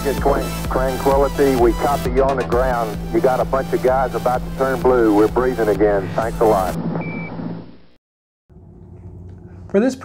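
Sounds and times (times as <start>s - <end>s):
narrow-band radio audio: 0.0s - 6.8s.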